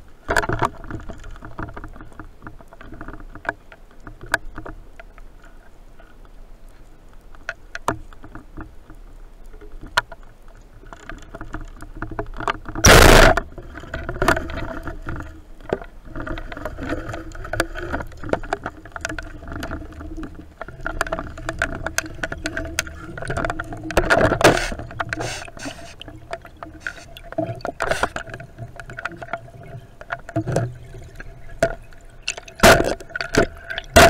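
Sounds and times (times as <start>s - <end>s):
underwater clicking and crackling: 0.0s - 34.0s
underwater knocking and rushing: 10.9s - 34.0s
speargun firing: 12.8s - 13.4s.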